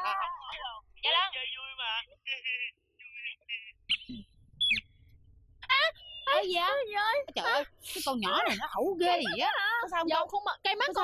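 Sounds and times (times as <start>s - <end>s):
high-pitched voice wordless sounds: 5.6s - 11.0s.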